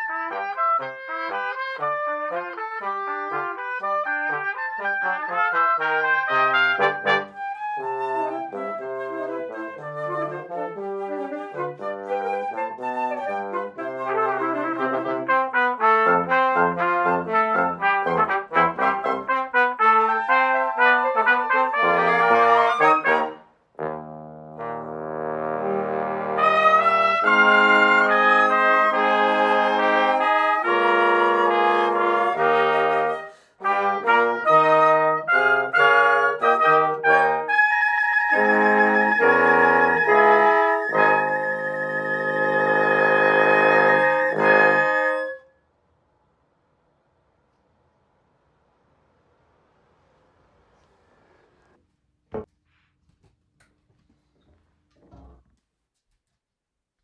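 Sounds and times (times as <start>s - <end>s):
small wind ensemble playing: 0.0s - 45.5s.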